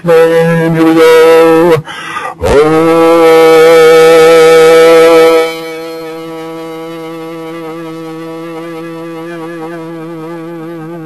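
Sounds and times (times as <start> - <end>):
man singing a sustained note: 0.0 - 11.0.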